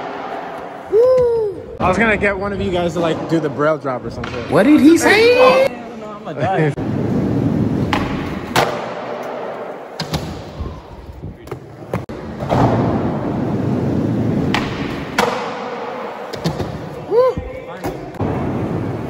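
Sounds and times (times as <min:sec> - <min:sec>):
skateboard wheels rolling: 0:06.8 - 0:17.2.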